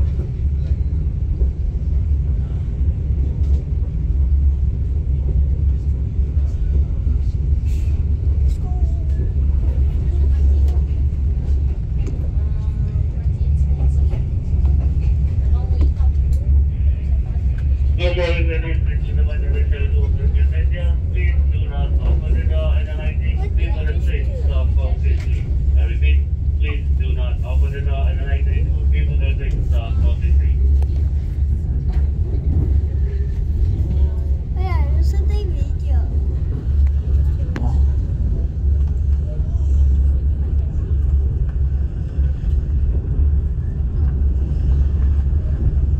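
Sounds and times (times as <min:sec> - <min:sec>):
faint voices: 0:00.0 - 0:45.9
train rumble inside carriage: 0:00.0 - 0:45.9
people talking: 0:06.3 - 0:42.2.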